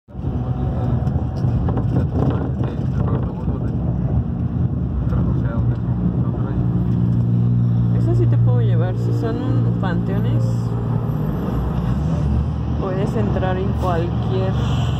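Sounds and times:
road noise: 0.1 - 14.9
vehicle engine drone: 0.1 - 14.9.

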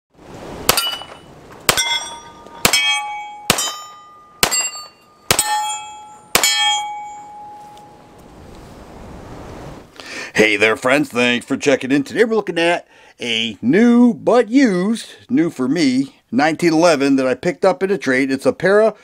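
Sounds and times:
steel target ringing: 0.7 - 8.0
pistol shots: 2.6 - 5.6, 6.3 - 6.8.

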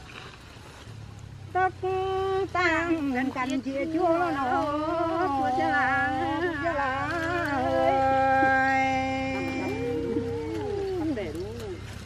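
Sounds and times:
women singing folk song: 1.5 - 11.9.

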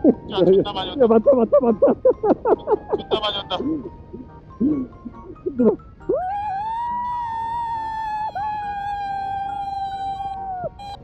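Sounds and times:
person howling: 5.6 - 11.0.

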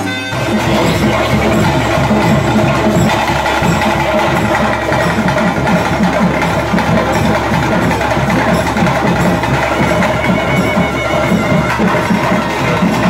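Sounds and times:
group of drums playing: 0.0 - 13.0
sustained tones: 0.0 - 13.0.

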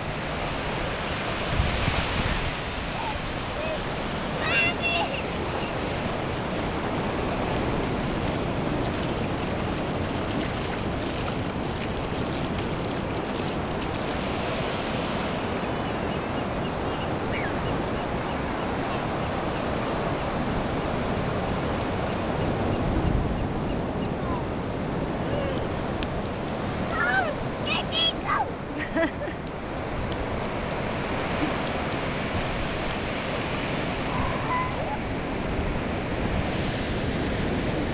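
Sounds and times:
surf washing over sand: 0.0 - 37.9.

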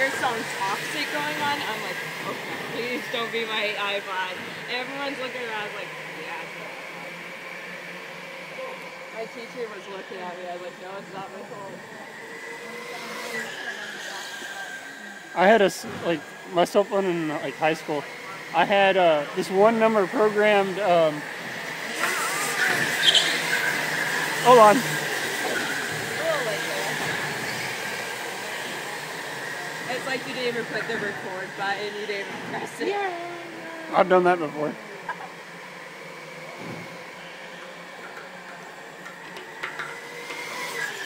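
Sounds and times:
go-kart motors passing: 0.0 - 41.0.

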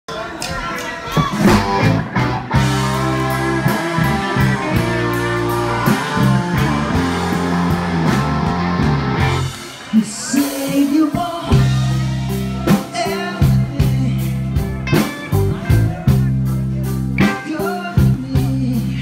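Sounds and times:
live rock band playing: 1.2 - 19.0.

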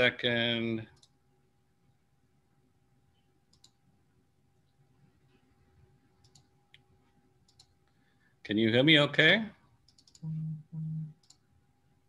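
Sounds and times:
computer mouse clicks: 0.9 - 1.2, 3.5 - 3.8, 6.2 - 8.0, 9.8 - 10.3, 11.2 - 11.4.

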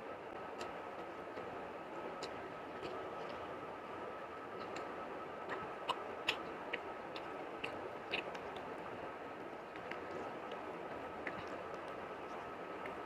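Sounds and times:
wet chewing clicks: 2.2 - 3.6, 4.6 - 9.0, 9.6 - 13.0.

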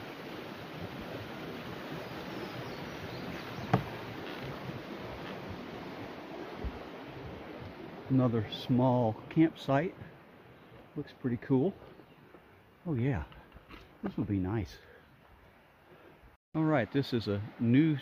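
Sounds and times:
footsteps on wooden bridge: 3.2 - 5.7, 6.5 - 7.8, 11.7 - 12.6.

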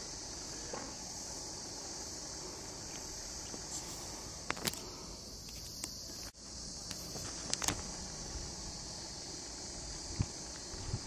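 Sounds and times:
insects chorus: 0.0 - 11.0.

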